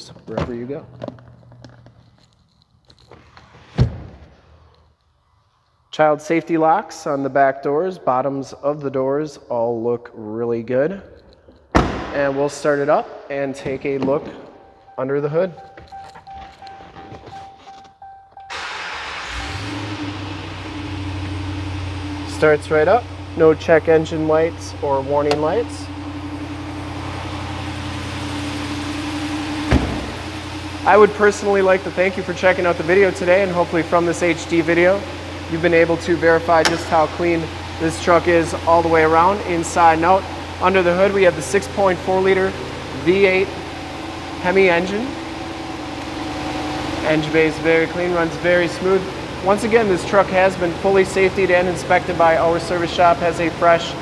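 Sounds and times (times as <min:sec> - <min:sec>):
truck door shutting: 0:11.7 - 0:12.4, 0:29.6 - 0:30.3
pickup engine idling: 0:18.4 - 0:54.0.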